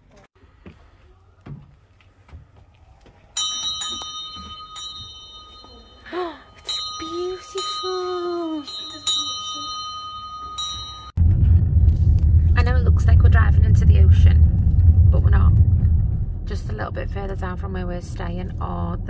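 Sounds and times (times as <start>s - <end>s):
door chime tinkling: 3.4s - 11.2s
car driving rumble: 10.5s - 19.0s.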